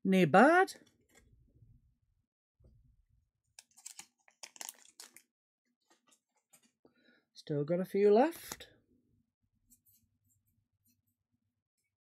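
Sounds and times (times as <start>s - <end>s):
trading cards and foil pack crinkling: 3.6s - 5.3s.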